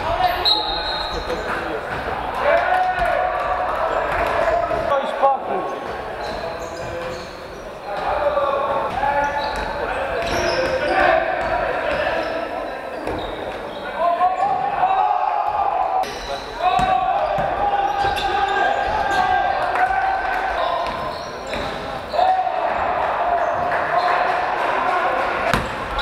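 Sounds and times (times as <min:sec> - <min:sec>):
players' voices calling: 0:00.0 - 0:26.0.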